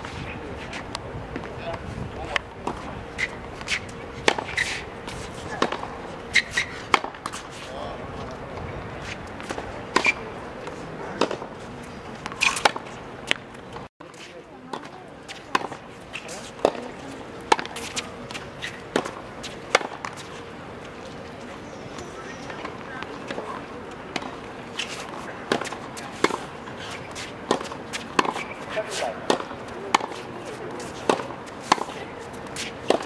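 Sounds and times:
tennis balls struck by racket: 0.7 - 7.5, 9.0 - 11.5, 12.1 - 13.8, 14.7 - 20.4, 22.0 - 33.0
tennis balls bouncing on court: 0.9 - 7.4, 8.2 - 13.8, 14.7 - 21.2, 22.0 - 33.0.

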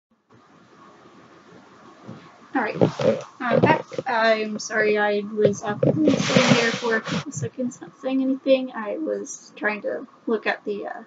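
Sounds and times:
faint background room noise: 0.2 - 11.0.

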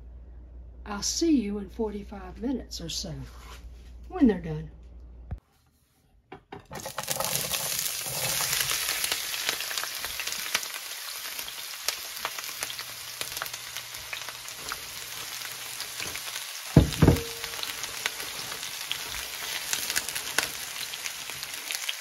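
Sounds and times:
vegetables sizzling in hot oil: 6.8 - 22.0.

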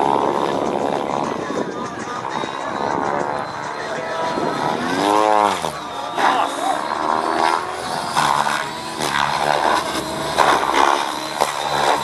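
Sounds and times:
model helicopter rotor whine: 0.0 - 12.0.

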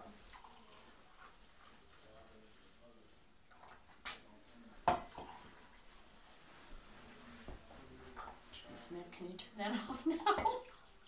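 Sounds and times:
coffee pouring into a mug: 0.0 - 6.1, 10.4 - 11.0
mugs clinking: 4.8 - 5.5.

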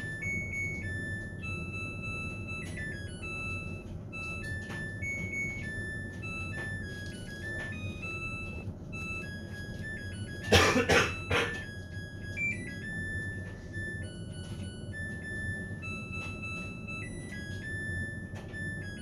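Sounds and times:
electronic background music: 0.0 - 19.0
low steady hum: 0.0 - 19.0
person coughing: 10.4 - 11.7.

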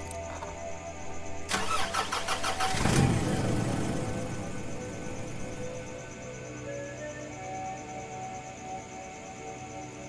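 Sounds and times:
starter motor cranking: 1.5 - 3.0
car engine running: 1.5 - 5.9.

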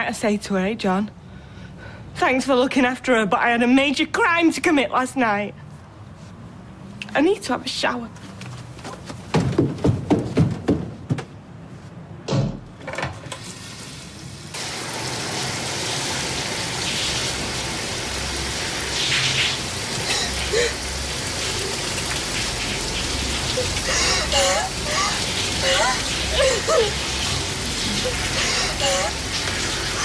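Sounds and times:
shower water running: 13.4 - 30.0.

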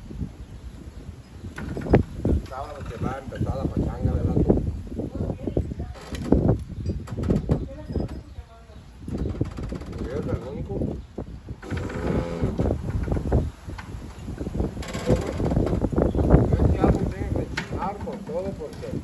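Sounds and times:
people talking: 2.5 - 6.2, 7.5 - 8.9, 10.0 - 11.0, 16.4 - 19.0.

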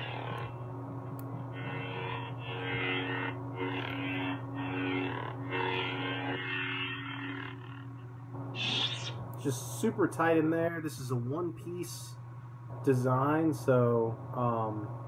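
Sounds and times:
lightsaber idle hum: 0.0 - 12.2
lightsaber swing swells: 8.6 - 9.2.

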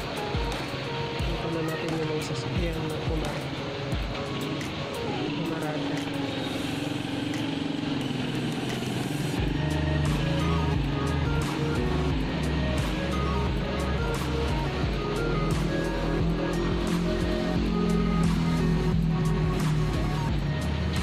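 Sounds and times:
music with strong bass line: 0.0 - 21.0
street noise: 0.0 - 21.0.

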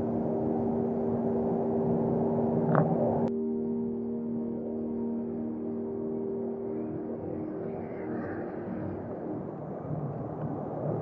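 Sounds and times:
ambient background music: 0.0 - 11.0
low rumbling outdoor noise: 0.0 - 11.0.

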